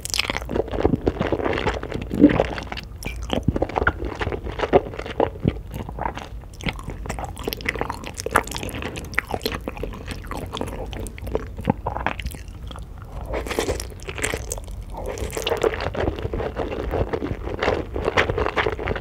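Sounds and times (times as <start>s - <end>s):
close chewing of food: 0.0s - 19.0s.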